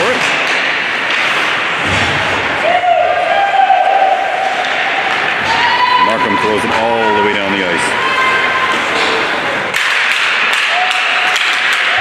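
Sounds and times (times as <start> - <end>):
sticks and puck tapping on ice: 0.1 - 1.7, 9.0 - 12.0.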